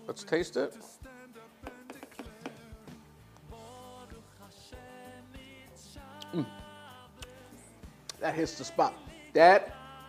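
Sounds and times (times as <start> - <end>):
faint background music: 0.0 - 10.0
spoon knocking plastic bowl: 1.6 - 2.6.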